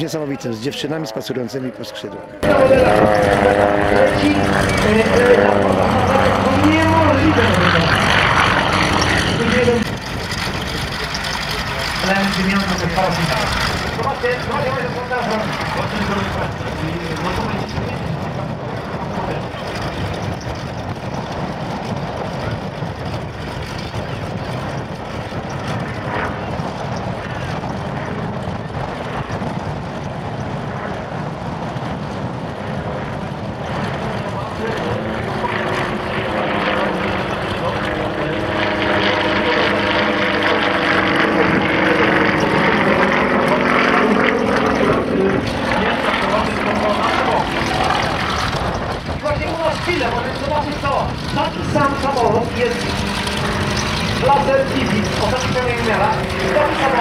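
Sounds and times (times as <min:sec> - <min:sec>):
propeller plane engine droning: 0:00.0 - 0:57.0.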